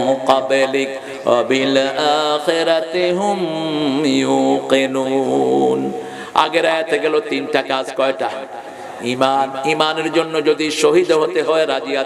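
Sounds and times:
man chanting through a microphone: 0:00.0 - 0:12.0.

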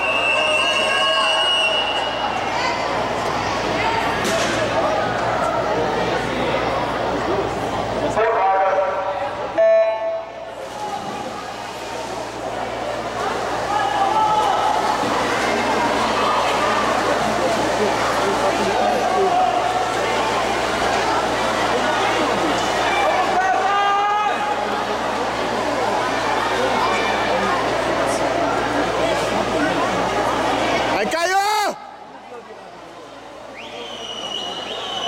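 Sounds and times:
spectators shouting and cheering: 0:00.0 - 0:07.5, 0:12.7 - 0:28.2.

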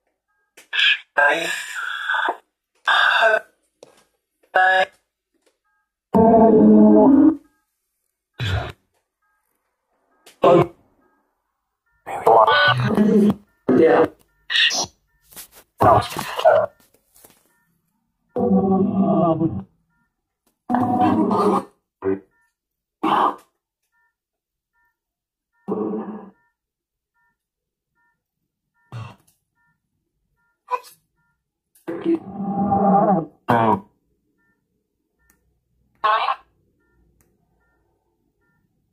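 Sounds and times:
faint beeping tones: 0:05.6 - 0:07.7, 0:08.4 - 0:21.2, 0:24.8 - 0:25.0, 0:25.6 - 0:26.6, 0:27.2 - 0:27.4, 0:28.0 - 0:28.2, 0:28.8 - 0:31.5, 0:34.4 - 0:35.5, 0:36.7 - 0:38.9
garbled voice-like fragments: 0:10.4 - 0:10.8, 0:12.1 - 0:15.0, 0:15.8 - 0:16.7.

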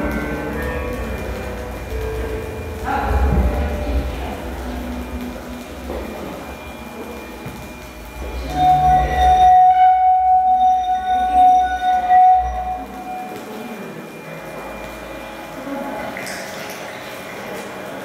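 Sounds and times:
steady high electronic tone: 0:00.0 - 0:16.2
low rumbling drone: 0:00.0 - 0:16.7.

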